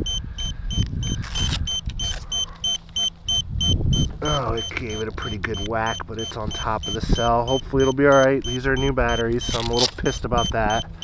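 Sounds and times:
wind rumble on microphone: 0.0 - 2.2, 3.4 - 5.2
electronic beeper short high beeps: 0.0 - 10.9.

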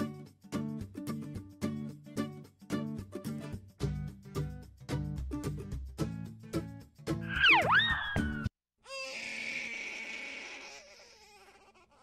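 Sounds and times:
background music with plucked notes: 0.0 - 7.4
cartoon whistle sound effect: 7.3 - 8.5.

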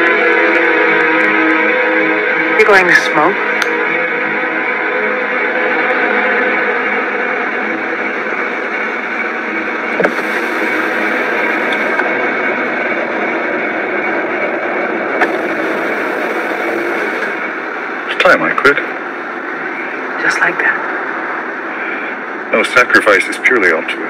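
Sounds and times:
car engine and road noise: 0.0 - 22.5.

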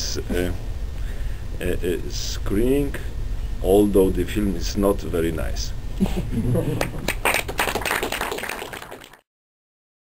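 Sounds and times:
audience laughter: 6.0 - 7.2
audience clattering: 6.7 - 9.2.

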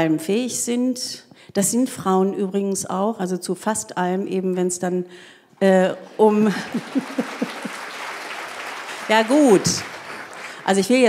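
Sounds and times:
audience applauding: 6.2 - 11.0.

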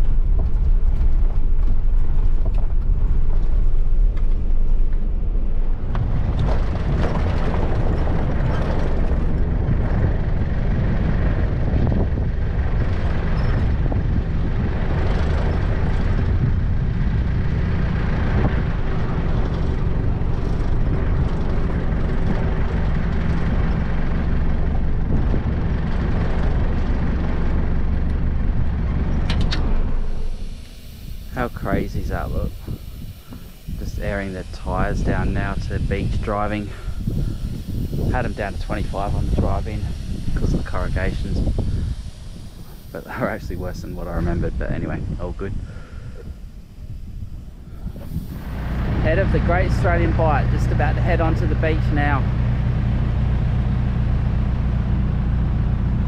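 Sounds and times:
vehicle engine drone: 0.0 - 56.0.

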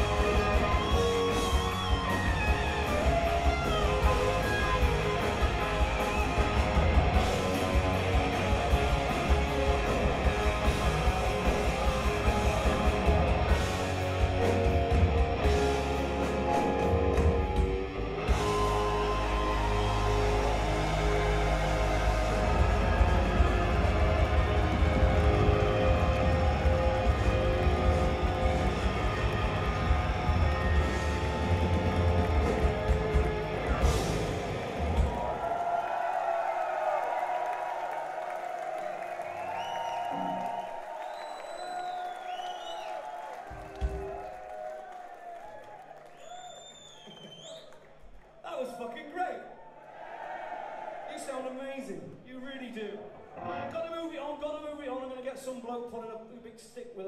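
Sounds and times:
crowd cheering and whistling: 0.0 - 14.8, 15.4 - 48.5
hard rock band playing live: 0.0 - 35.2.

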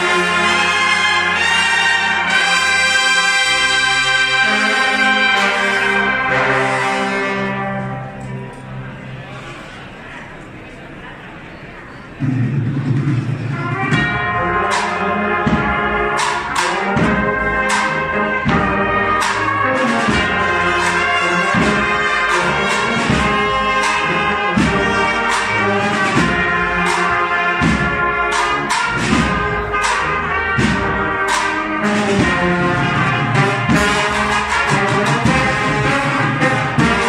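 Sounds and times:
cornets playing: 0.0 - 9.0, 13.5 - 37.0
marching band playing: 0.0 - 9.2, 12.2 - 37.0
drums: 12.0 - 37.0.

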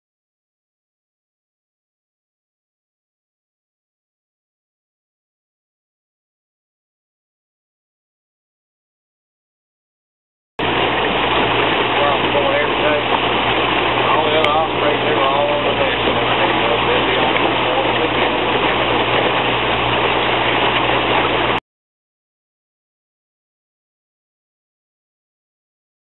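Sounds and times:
outboard motor running: 10.6 - 21.6
wind and water rushing: 10.6 - 21.6
faint voices: 14.0 - 19.4.

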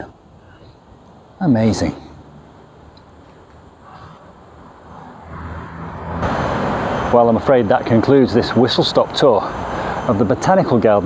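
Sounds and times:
outdoor background noise: 0.0 - 11.0
distant engine humming: 2.2 - 11.0.

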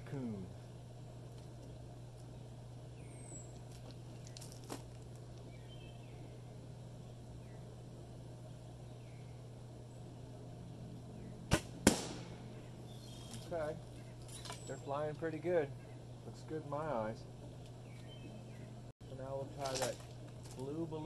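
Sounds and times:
steady low hum: 0.0 - 21.0
arrow popping balloon: 11.5 - 12.4.

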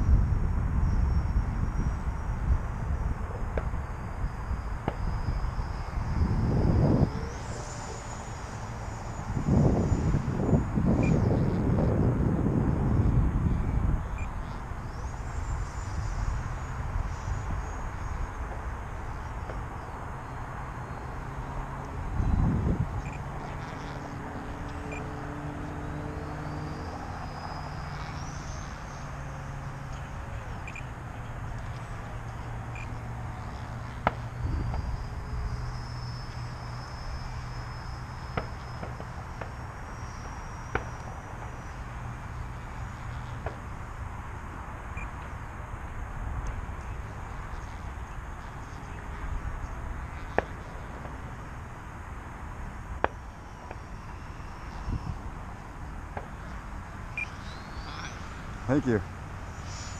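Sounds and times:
wind buffeting microphone: 0.0 - 26.2, 29.5 - 35.8
rc jet high whine: 0.0 - 59.9.

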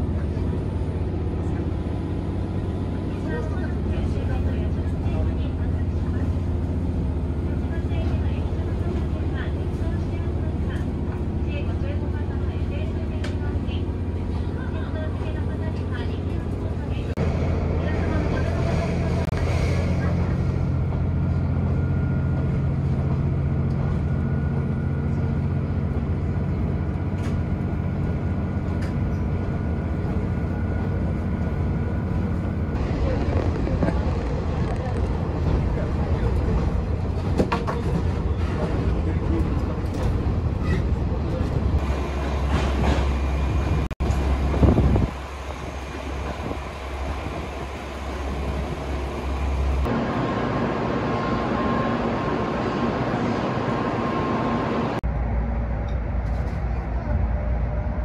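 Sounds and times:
train rumble from inside: 0.0 - 58.0.

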